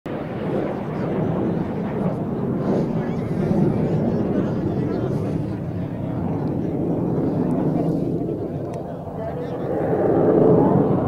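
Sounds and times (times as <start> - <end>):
jets flying past: 0.1 - 11.0.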